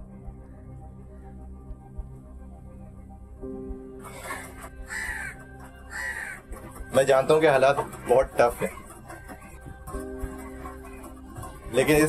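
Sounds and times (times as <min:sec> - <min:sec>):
soft background music: 0:00.0 - 0:12.0
bird calling: 0:04.1 - 0:11.8.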